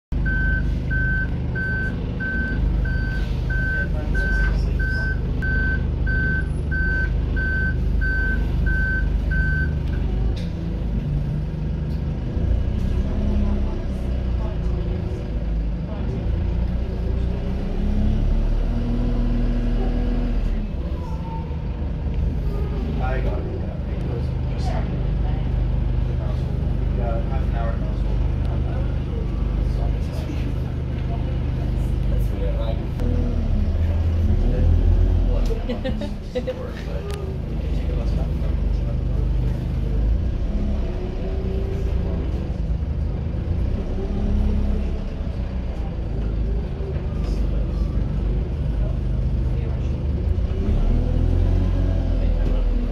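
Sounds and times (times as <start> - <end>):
bus diesel engine pulling away: 0.2 - 52.9.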